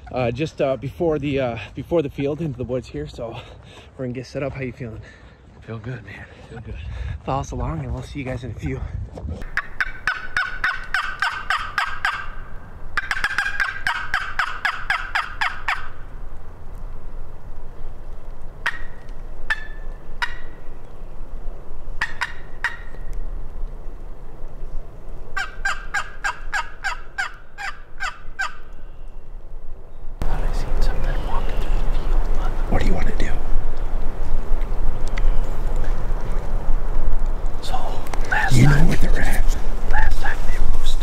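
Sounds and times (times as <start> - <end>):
turkey call yelps: 9.4 - 16.1, 18.6 - 20.8, 22.0 - 23.2, 25.4 - 28.8.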